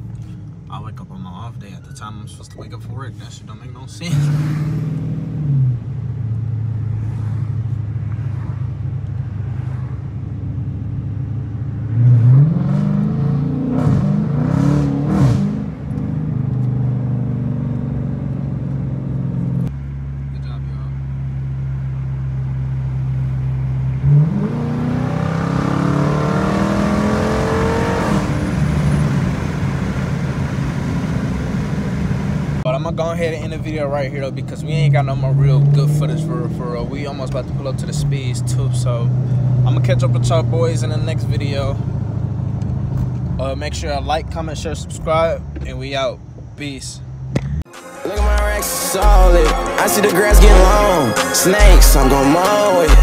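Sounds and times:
car engine revving while driving: 4.0s - 20.3s, 21.5s - 43.5s.

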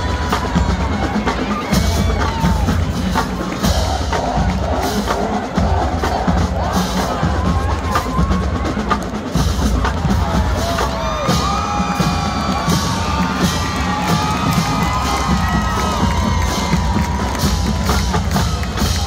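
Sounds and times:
crowd cheering: 0.0s - 19.0s
marching band playing: 0.0s - 19.0s.

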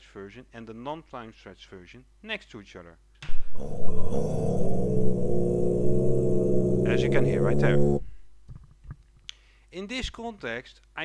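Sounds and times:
low chant drone of voices: 3.4s - 8.0s.

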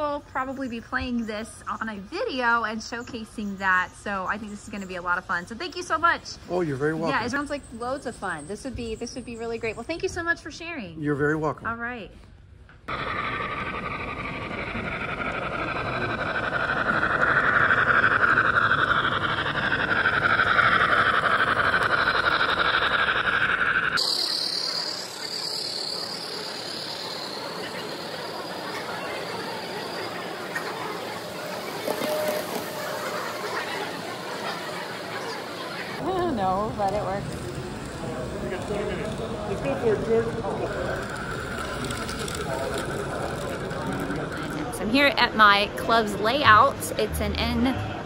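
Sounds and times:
model train rolling on track: 0.0s - 10.3s, 12.9s - 48.0s.

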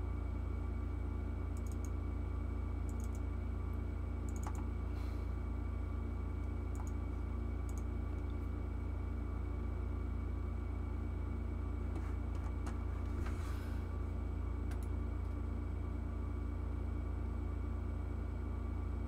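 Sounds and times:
computer hum: 0.0s - 19.0s
computer mouse clicks: 1.6s - 2.0s, 2.9s - 3.3s, 4.3s - 4.7s, 6.7s - 7.0s, 7.6s - 7.9s.

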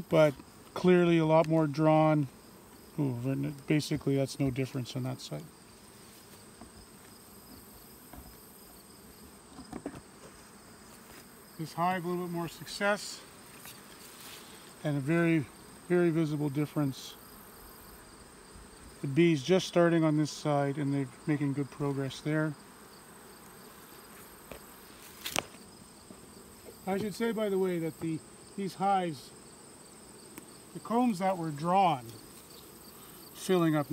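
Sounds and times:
bees buzzing: 0.0s - 33.9s
knocks on wooden hive boxes: 7.5s - 8.4s, 9.5s - 10.3s.

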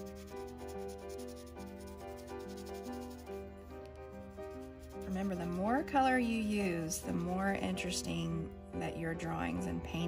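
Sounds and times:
colored pencil rubbing on paper: 0.0s - 8.0s
background music: 0.0s - 10.0s.

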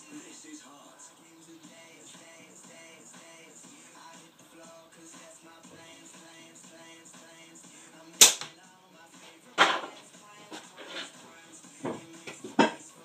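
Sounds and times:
background music: 0.0s - 13.0s
slingshot crack: 8.2s - 8.5s.

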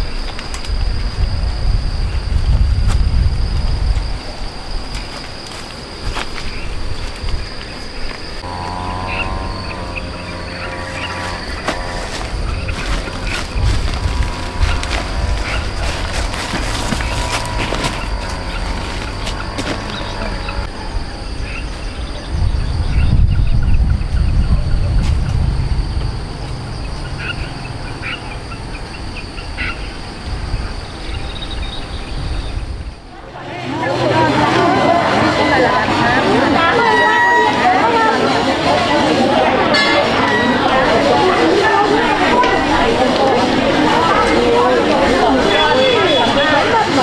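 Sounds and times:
high-pitched insect drone: 0.0s - 33.0s
distant voices: 0.0s - 47.0s
branches rustling: 2.8s - 20.7s
low rumble: 8.4s - 29.3s
plastic sack rustling: 10.8s - 20.2s.

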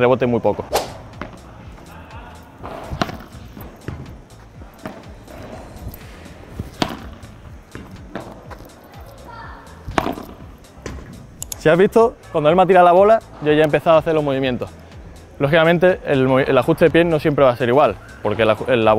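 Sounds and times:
padel ball struck with racket: 0.7s - 1.4s, 2.6s - 4.2s, 4.8s - 5.2s, 6.6s - 8.6s, 9.9s - 11.1s
ball bouncing on court: 1.1s - 1.8s, 2.6s - 5.6s, 6.5s - 9.1s, 9.9s - 11.2s.

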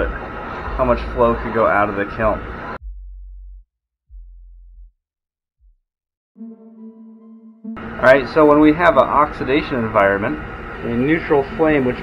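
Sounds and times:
low electronic hum tones: 6.4s - 9.3s.

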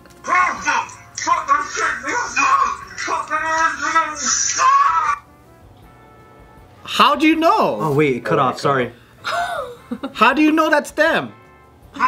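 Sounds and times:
man speaking: 0.2s - 5.2s, 6.9s - 9.0s
pitched voice-like sound: 0.3s - 5.2s.

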